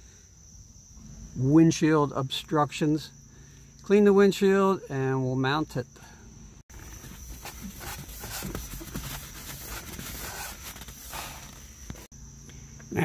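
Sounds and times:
cloth rubbing on glass: 0:06.7 - 0:12.1.

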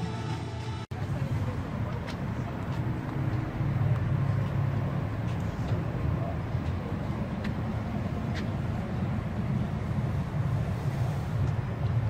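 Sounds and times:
low engine hum: 0:00.0 - 0:12.0
faint voices: 0:00.9 - 0:11.9.

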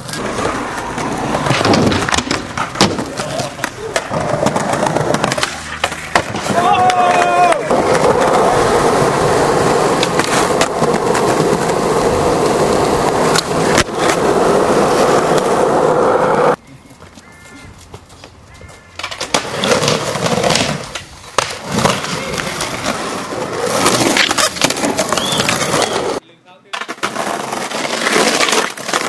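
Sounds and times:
skateboard clacks and pops: 0:00.0 - 0:08.6, 0:09.9 - 0:14.2, 0:19.0 - 0:23.0, 0:23.7 - 0:29.0
skateboard wheels rumbling on concrete: 0:00.0 - 0:29.0.

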